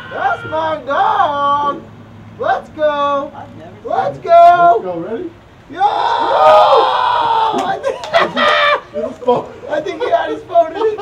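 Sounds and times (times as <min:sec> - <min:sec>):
people yelling: 0:00.0 - 0:01.8, 0:05.6 - 0:11.0.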